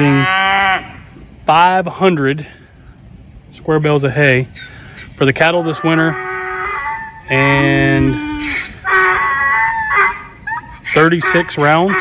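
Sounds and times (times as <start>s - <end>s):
farm animal calling: 0.0s - 1.2s, 4.4s - 12.0s.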